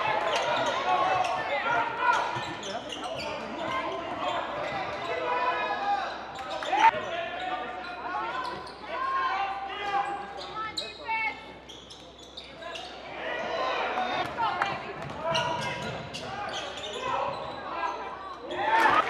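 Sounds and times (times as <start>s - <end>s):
sneakers squeaking: 0.0s - 5.3s, 6.0s - 9.2s, 9.8s - 13.2s, 14.7s - 19.0s
voices in echoing hall: 0.0s - 19.0s.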